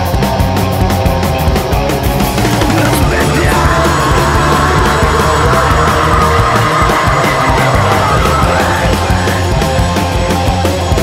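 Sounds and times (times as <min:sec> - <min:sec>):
distorted electric guitars: 0:00.0 - 0:11.0
fast drumming with cymbals: 0:00.0 - 0:11.0.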